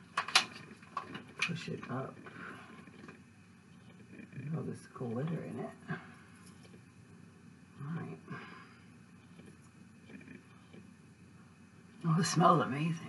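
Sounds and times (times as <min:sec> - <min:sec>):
low steady hiss: 0:00.0 - 0:13.0
woman speaking: 0:12.0 - 0:13.0.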